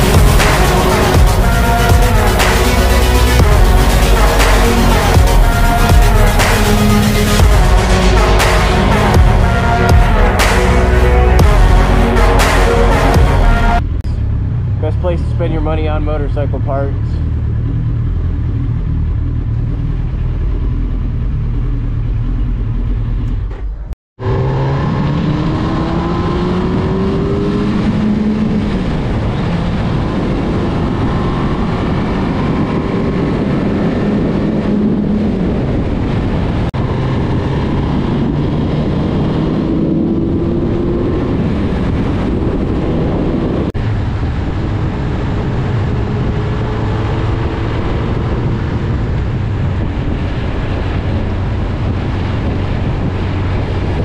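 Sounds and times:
motorcycle engine accelerating: 0.0s - 54.0s
wind rushing over microphone: 24.2s - 54.0s.

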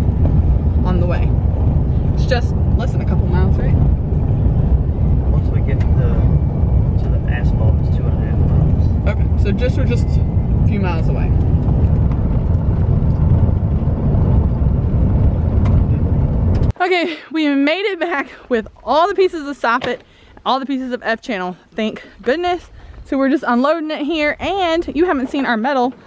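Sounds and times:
tyre and engine rumble: 0.0s - 16.8s.

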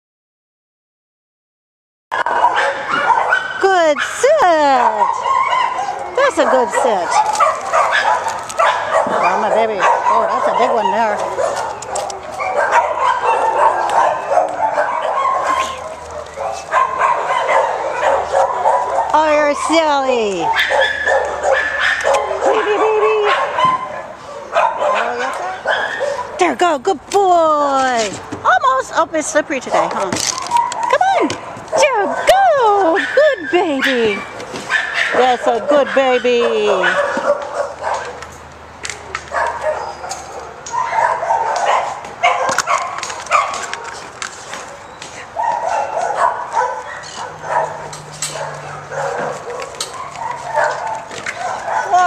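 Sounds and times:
sharp clicks and scuffs: 10.9s - 12.8s, 29.6s - 31.8s, 37.1s - 40.8s, 41.5s - 51.8s
dog yipping and whining: 39.0s - 43.6s, 44.7s - 52.0s.

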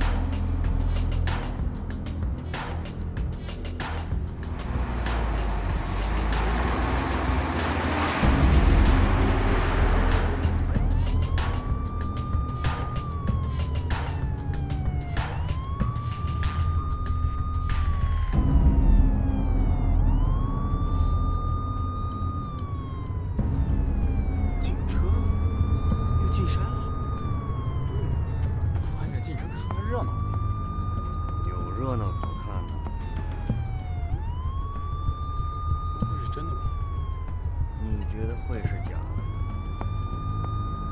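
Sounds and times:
police siren wailing: 0.0s - 40.9s
road noise: 0.0s - 40.9s
road noise inside vehicle: 4.2s - 11.6s
bus engine rumbling: 4.2s - 11.7s.

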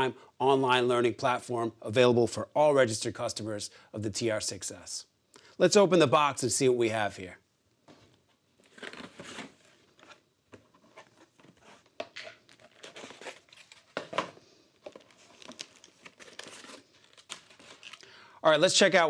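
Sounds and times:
cardboard crinkling and scraping: 7.9s - 18.0s
plastic bag rustling: 8.6s - 18.1s.

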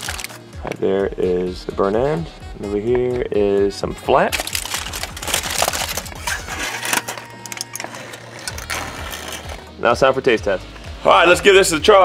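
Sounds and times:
aluminium foil crinkling: 0.0s - 0.4s, 4.3s - 9.7s.

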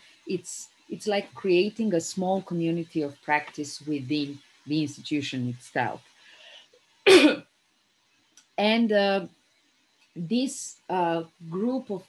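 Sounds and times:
woman clearing her throat: 7.1s - 7.4s.

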